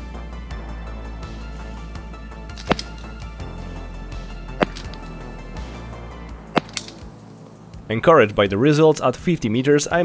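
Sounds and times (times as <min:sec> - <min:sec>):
sharp click: 0:02.6 - 0:03.1, 0:04.6 - 0:05.1, 0:06.6 - 0:07.1.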